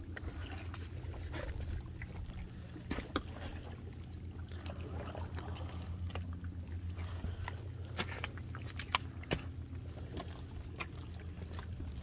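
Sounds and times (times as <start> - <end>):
low engine-like hum: 0.0 - 12.0.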